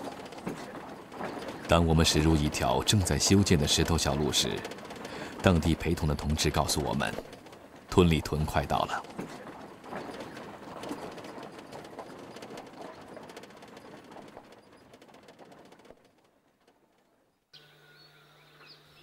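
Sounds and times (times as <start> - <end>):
tyres rolling on gravel: 0.0 - 17.4
faint bird chirps: 17.2 - 19.0.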